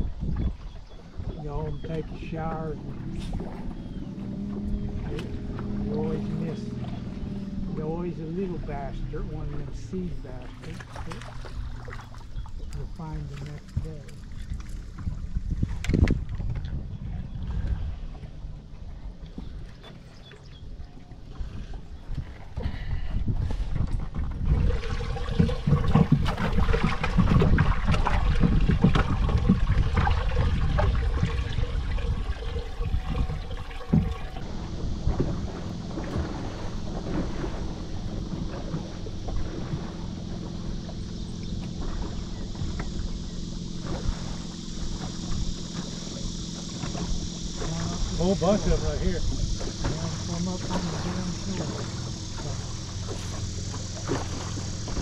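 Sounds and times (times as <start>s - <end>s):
waves lapping against boat hull: 0.0s - 55.0s
wind rumbling on microphone: 0.0s - 55.0s.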